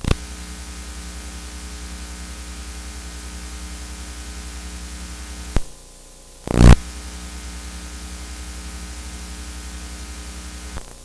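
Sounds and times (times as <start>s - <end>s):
videotape hiss: 0.0s - 5.8s, 6.4s - 11.0s
electrical mains hum: 0.0s - 11.0s.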